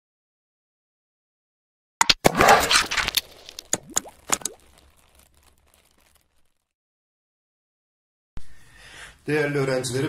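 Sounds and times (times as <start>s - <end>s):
sharp pops with pitch glides: 2.0s - 6.0s.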